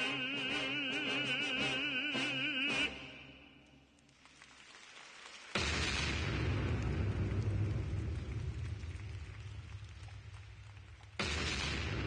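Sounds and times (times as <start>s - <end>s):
explosion boom with crackling rumble: 5.6s - 12.0s.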